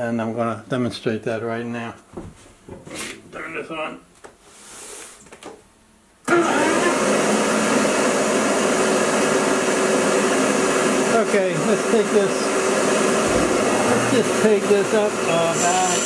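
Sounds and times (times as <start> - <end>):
bandsaw motor running: 6.3 - 16.0.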